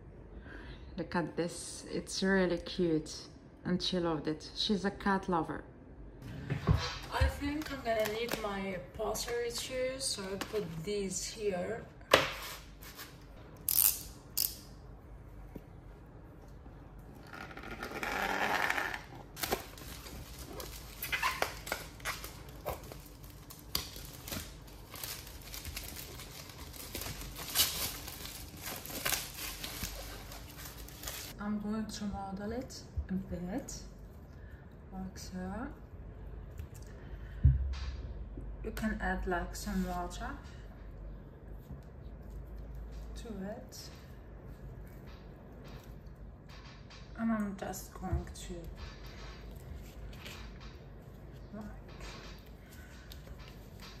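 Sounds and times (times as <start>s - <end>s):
low steady hum: 0.0s - 54.0s
plastic film crinkling: 7.4s - 10.8s, 17.6s - 31.4s.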